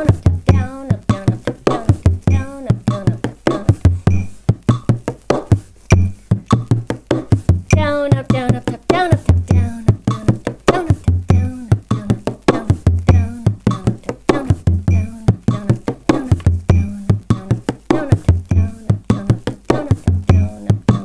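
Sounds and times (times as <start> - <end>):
frame drum rhythm: 0.0 - 21.0.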